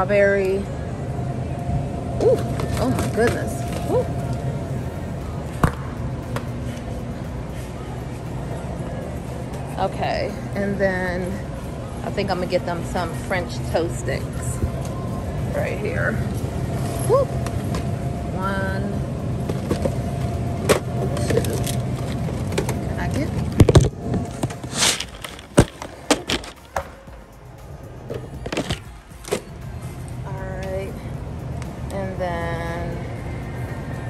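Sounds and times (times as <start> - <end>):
faint steady whine: 0.0 - 34.0
low store hum: 0.0 - 34.0.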